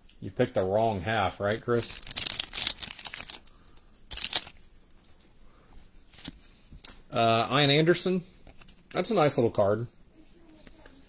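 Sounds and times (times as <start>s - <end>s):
foil wrapper tearing and crinkling: 1.7s - 4.6s.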